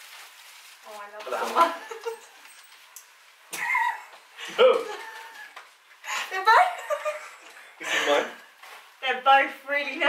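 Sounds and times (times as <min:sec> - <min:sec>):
woman squealing playfully: 0:03.5 - 0:04.1.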